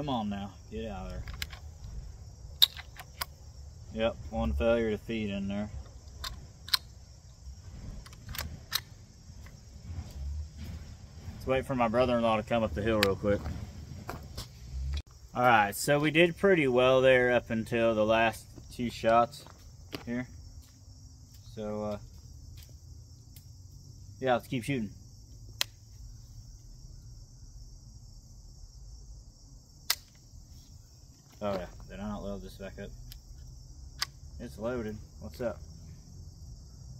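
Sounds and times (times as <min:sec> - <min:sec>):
crickets chirping: 0:00.0 - 0:36.9
rifle action metallic clicks: 0:02.6 - 0:03.4, 0:06.1 - 0:06.9.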